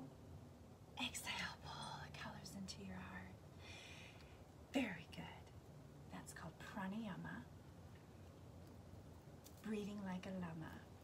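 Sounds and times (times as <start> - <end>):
woman whispering: 1.0 - 3.4, 4.7 - 5.5.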